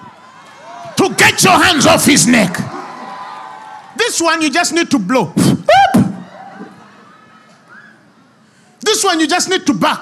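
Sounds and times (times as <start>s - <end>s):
man preaching in reverberant hall: 1.0s - 2.7s, 4.0s - 6.2s, 8.8s - 10.0s.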